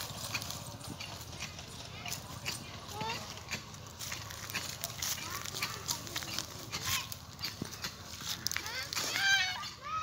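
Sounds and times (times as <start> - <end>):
footsteps crunching on dry leaves: 0.0 - 9.7.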